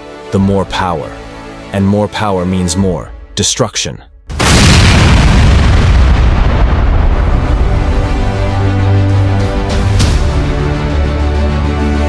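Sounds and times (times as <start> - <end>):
explosion boom and rumble: 4.3 - 10.6.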